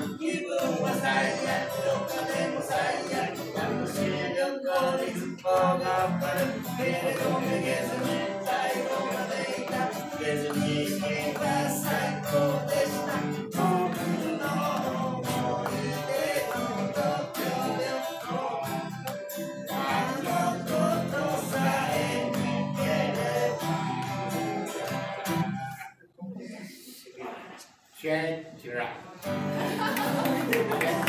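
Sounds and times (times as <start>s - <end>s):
man singing: 0.0s - 19.1s, 19.7s - 25.4s
acoustic guitar: 0.0s - 27.9s, 29.0s - 31.0s.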